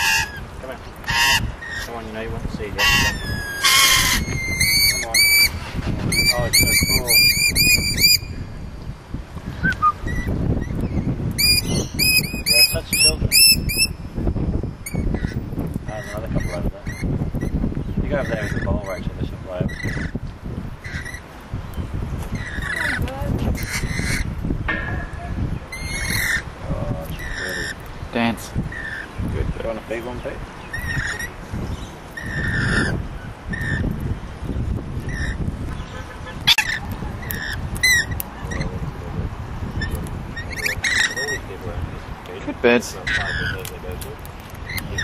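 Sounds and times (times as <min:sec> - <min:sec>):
lorikeets screeching and chirping: 0:00.0 - 0:08.8, 0:09.5 - 0:38.8, 0:39.7 - 0:44.0, 0:44.6 - 0:45.0
steady low rumble: 0:20.2 - 0:28.7.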